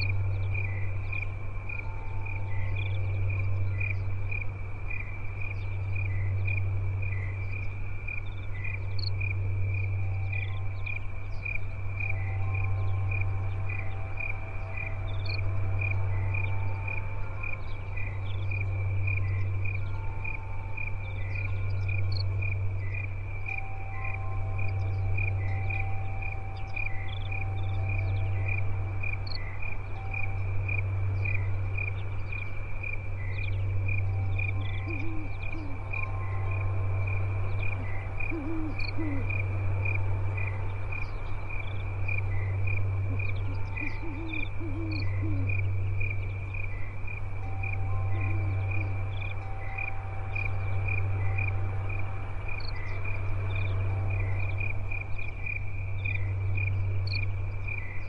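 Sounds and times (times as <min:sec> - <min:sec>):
crickets chirping: 0:00.0 - 0:58.0
low droning hum: 0:00.0 - 0:58.0.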